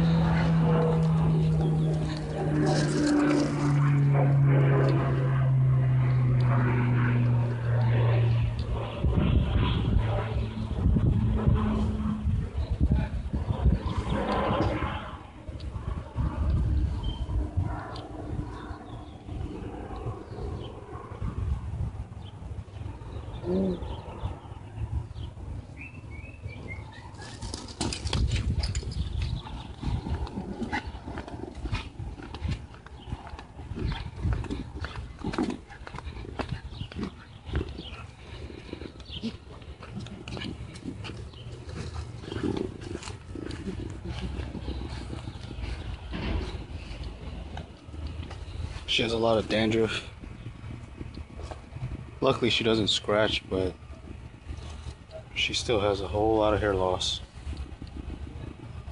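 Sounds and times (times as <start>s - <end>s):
wind rumble: 0.0s - 58.9s
footsteps on pavement: 27.2s - 51.8s.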